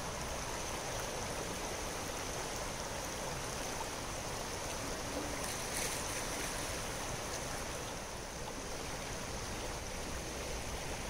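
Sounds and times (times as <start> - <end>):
creek water rushing over stones: 0.0 - 11.0.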